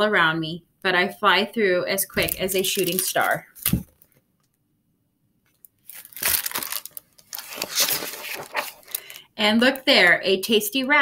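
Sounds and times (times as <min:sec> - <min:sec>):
book pages turning and rustling: 0:02.2 - 0:04.2, 0:05.5 - 0:09.2.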